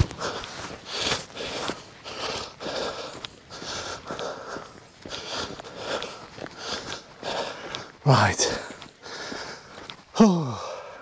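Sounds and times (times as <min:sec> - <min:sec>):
faint footfalls on dry ground: 0:00.0 - 0:11.0
person panting hard: 0:00.0 - 0:11.0.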